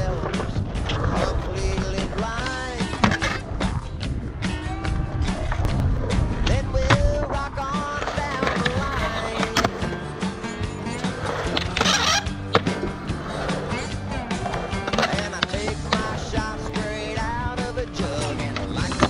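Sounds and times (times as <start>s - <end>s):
skateboard clacking on ground: 0.0s - 4.6s, 5.2s - 19.0s
skateboard wheels rolling on concrete: 0.0s - 19.0s.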